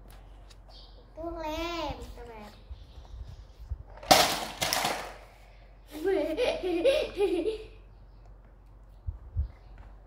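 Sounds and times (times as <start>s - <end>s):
girl giggling: 5.9s - 7.8s.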